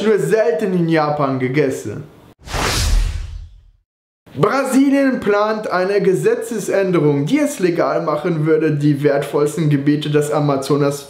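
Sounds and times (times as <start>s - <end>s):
low boom: 2.4s - 3.8s
whoosh transition effect: 2.4s - 3.8s.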